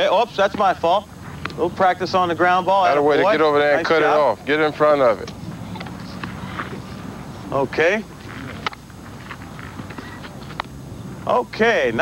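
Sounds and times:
open-air ambience: 0:00.0 - 0:12.0.

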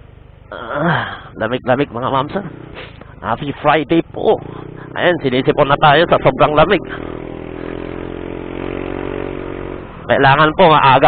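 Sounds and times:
motorcycle engine accelerating: 0:00.0 - 0:11.0.

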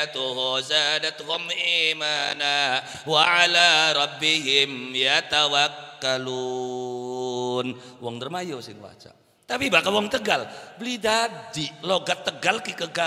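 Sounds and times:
man chanting into a microphone: 0:00.0 - 0:13.0.

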